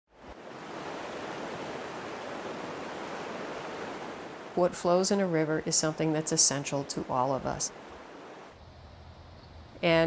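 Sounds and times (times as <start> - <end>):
river water rushing: 0.2 - 4.7, 5.7 - 9.7.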